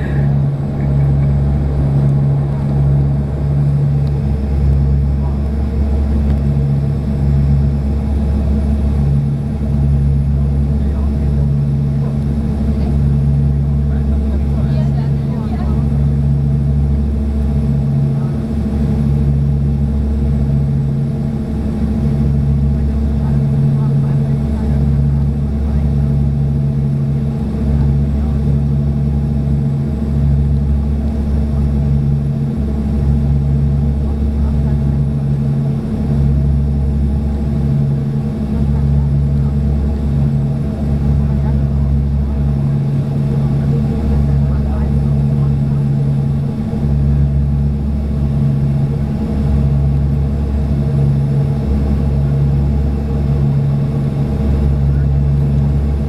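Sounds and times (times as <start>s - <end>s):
turboprop engine and propeller hum: 0.0s - 56.0s.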